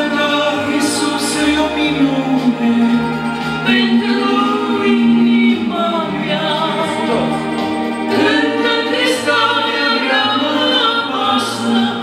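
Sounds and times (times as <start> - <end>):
man and woman singing: 0.0 - 12.0.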